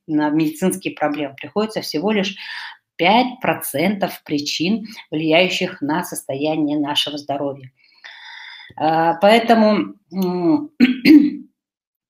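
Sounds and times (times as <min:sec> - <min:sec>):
woman clearing her throat: 0:10.8 - 0:11.5.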